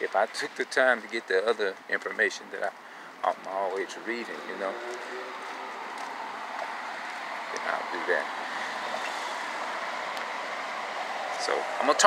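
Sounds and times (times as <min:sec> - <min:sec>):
street traffic hum: 0:00.0 - 0:12.0.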